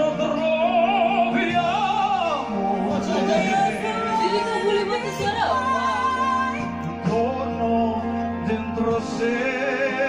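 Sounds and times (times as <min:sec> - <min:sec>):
instrumental backing: 0:00.0 - 0:10.0
man and woman singing duet: 0:00.0 - 0:10.0.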